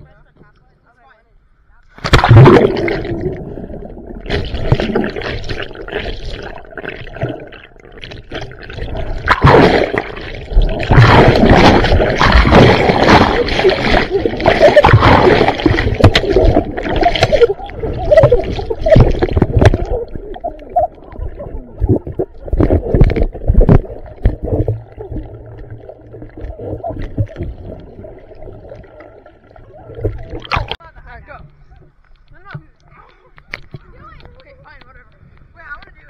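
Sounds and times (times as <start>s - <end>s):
low underwater hum: 1.4s - 30.8s
water churning underwater: 2.0s - 30.8s
water splashing: 2.0s - 30.9s.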